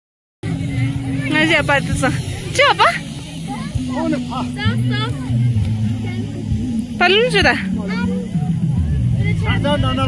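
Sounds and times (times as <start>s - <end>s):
voices calling: 0.5s - 10.0s.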